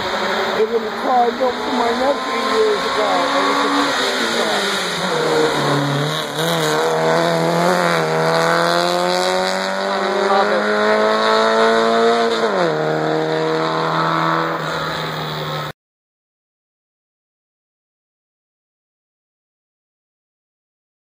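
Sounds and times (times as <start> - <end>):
race car engine accelerating: 0.0 - 15.7.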